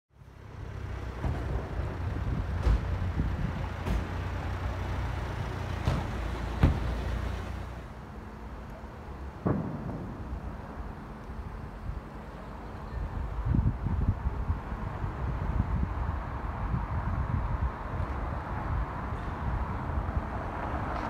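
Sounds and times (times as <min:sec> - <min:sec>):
low rumble of road traffic: 0:00.1 - 0:21.0
sharp knocks: 0:03.8 - 0:04.3, 0:05.8 - 0:07.2.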